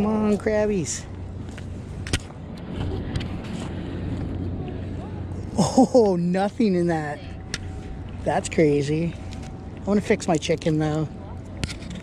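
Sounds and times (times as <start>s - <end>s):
steady rumbling noise: 0.0s - 12.0s.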